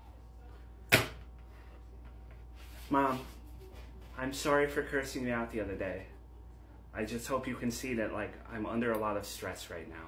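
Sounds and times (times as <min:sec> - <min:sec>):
faint room hum: 0:00.0 - 0:10.0.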